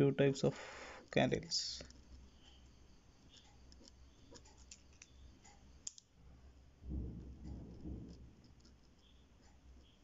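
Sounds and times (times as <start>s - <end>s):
ballpoint pen scratching paper: 7.5s - 10.0s.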